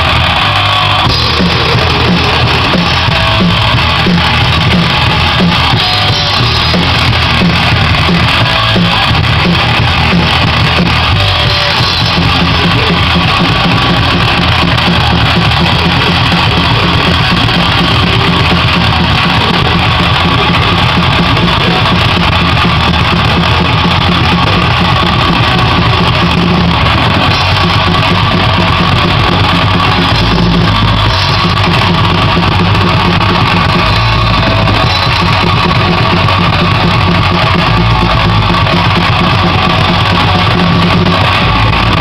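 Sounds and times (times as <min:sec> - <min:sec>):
distorted electric guitar: 0:00.0 - 0:42.0
drum kit with crashing cymbals: 0:00.0 - 0:42.0.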